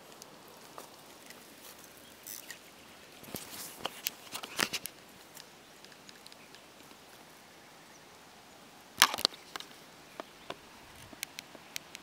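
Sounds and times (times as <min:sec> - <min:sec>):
clicks and rustling: 0:03.2 - 0:07.0, 0:09.0 - 0:09.8.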